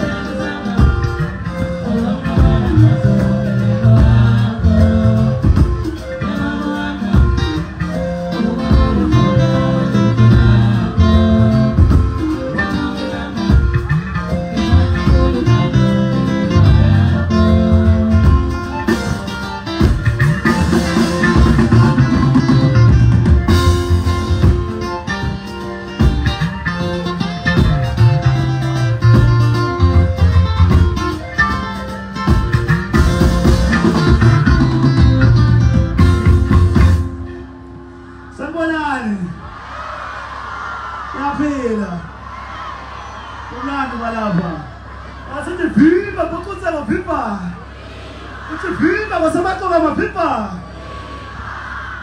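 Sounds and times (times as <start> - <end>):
acoustic guitar picking melody: 0.0 - 38.4
low bass notes: 0.0 - 39.0.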